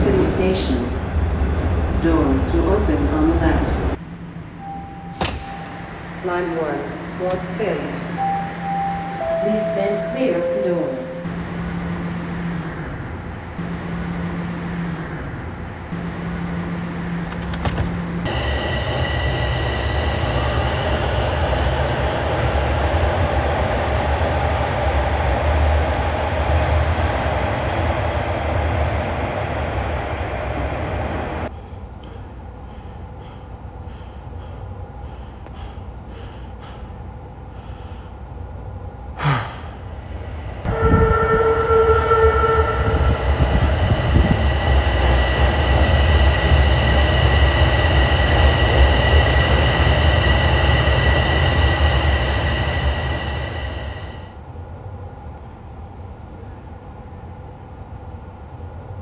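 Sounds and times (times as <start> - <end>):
subway train rumble and whine: 0.0 - 59.0
steady tone: 3.9 - 31.5, 39.8 - 54.4.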